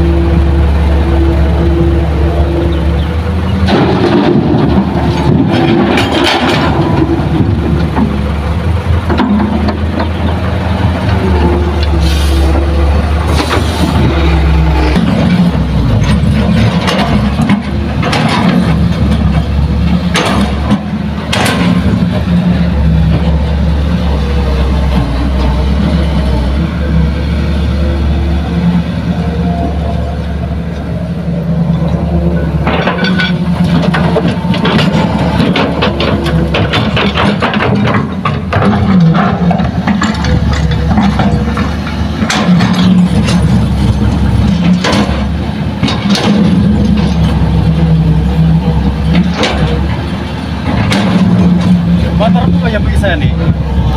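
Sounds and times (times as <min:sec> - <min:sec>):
excavator diesel engine running: 0:00.0 - 0:53.9.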